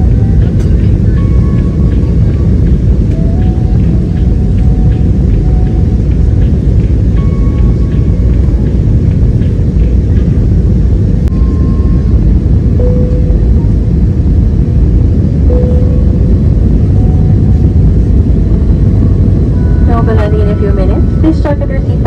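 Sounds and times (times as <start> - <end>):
airliner engine rumble in cabin: 0.0 - 22.0.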